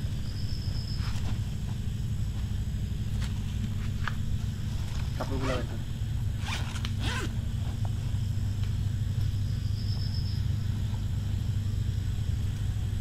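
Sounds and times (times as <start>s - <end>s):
steady low hum: 0.0s - 13.0s
backpack zipper pulled: 6.4s - 7.4s.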